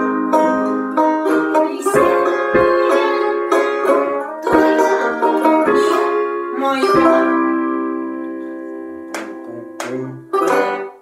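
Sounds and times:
banjo picking: 0:00.0 - 0:11.0.

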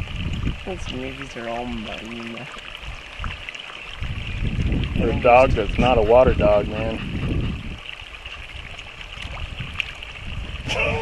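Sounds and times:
stream trickling: 0:00.0 - 0:11.0
wind rumbling on microphone: 0:00.0 - 0:11.0.

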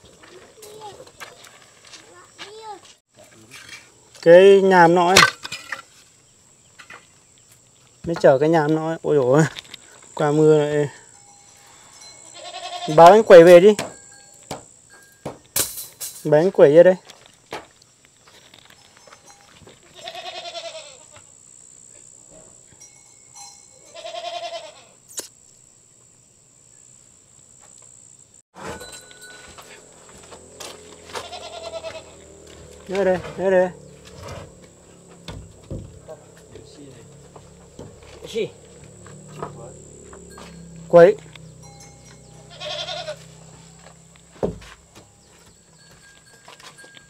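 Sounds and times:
goat bleating: 0:12.3 - 0:13.2, 0:19.9 - 0:21.2, 0:23.9 - 0:25.0, 0:30.6 - 0:44.4.

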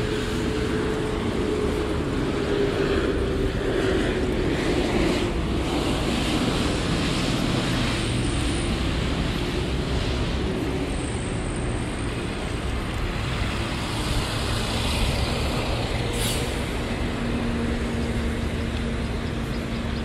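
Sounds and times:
low engine hum: 0:00.0 - 0:20.0
traffic rumble: 0:00.0 - 0:20.0.

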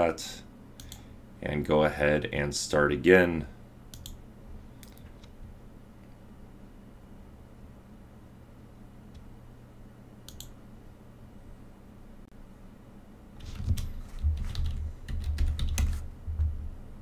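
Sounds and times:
faint click: 0:00.8 - 0:01.0, 0:10.3 - 0:10.6
typing on a keyboard: 0:13.5 - 0:16.0.

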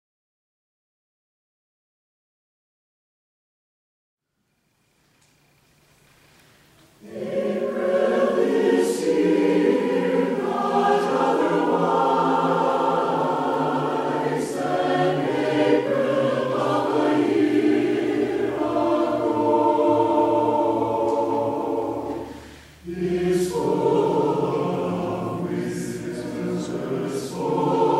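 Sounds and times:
mixed choir singing: 0:07.0 - 0:27.9.

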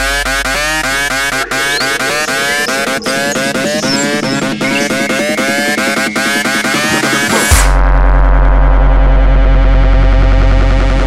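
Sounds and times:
deep sustained bass tone: 0:00.0 - 0:05.6, 0:07.5 - 0:11.0
held synthesizer chord: 0:00.0 - 0:07.2.

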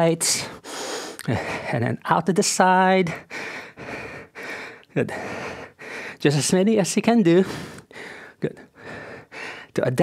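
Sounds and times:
man breathing hard: 0:00.4 - 0:01.8, 0:03.1 - 0:06.2, 0:07.4 - 0:09.8.

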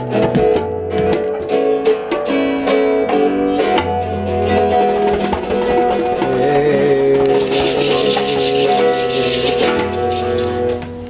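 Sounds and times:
acoustic guitar: 0:00.0 - 0:11.0
tabla strokes: 0:04.6 - 0:11.0.

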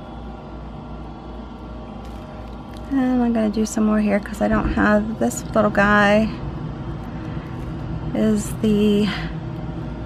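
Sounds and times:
furnace humming: 0:00.0 - 0:10.0.

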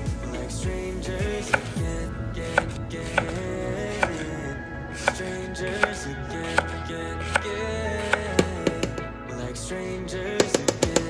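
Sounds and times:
background music: 0:00.0 - 0:11.0
knife chopping on wooden board: 0:02.5 - 0:04.2, 0:05.0 - 0:09.0.

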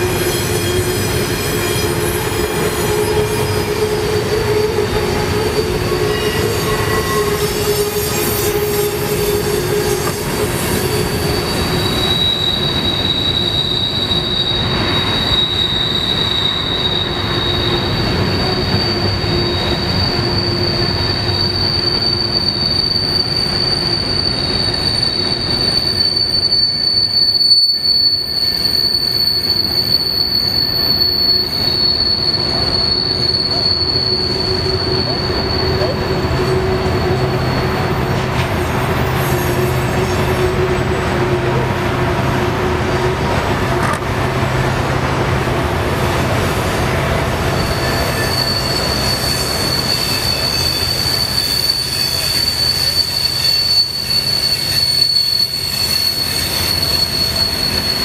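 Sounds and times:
steel wheels rumbling on rail: 0:00.0 - 0:58.0
wheel flanges squealing: 0:00.0 - 0:58.0.

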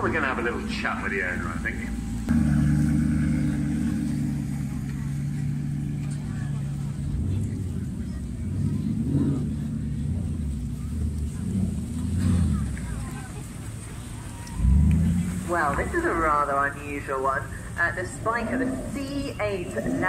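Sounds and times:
car engine passing by: 0:00.0 - 0:16.8
car engine at low revs: 0:00.0 - 0:20.0.

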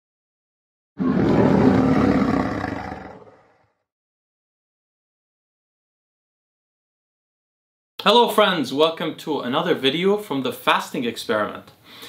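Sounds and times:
lion roaring: 0:01.0 - 0:03.7.

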